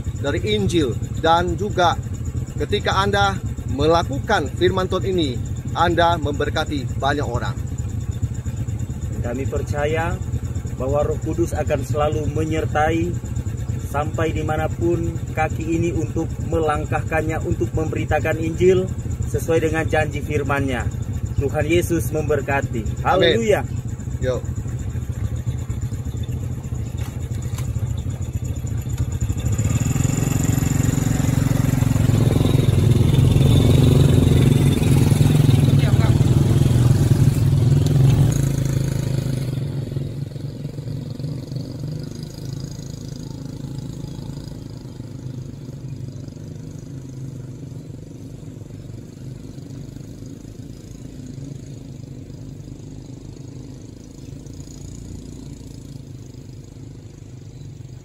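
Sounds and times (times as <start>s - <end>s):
small motorcycle engines: 0.0s - 58.0s.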